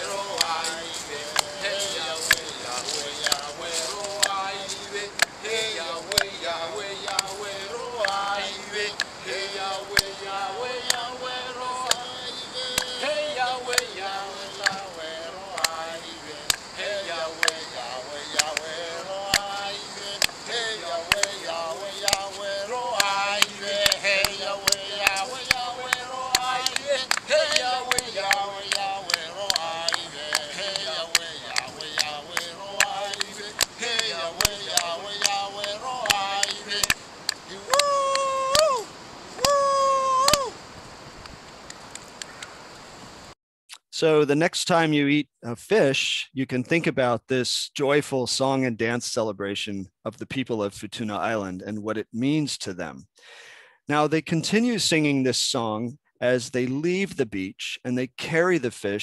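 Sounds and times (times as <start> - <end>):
sharp rhythmic beats: 0.0 - 38.3
group singing together: 0.0 - 39.7.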